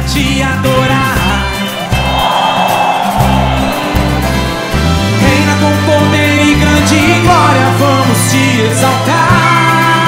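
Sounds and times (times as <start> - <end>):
live gospel band playing: 0.9 - 10.0.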